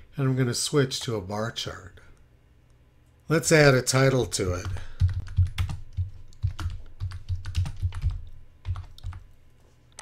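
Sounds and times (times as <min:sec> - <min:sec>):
computer keyboard typing: 0:04.4 - 0:09.2.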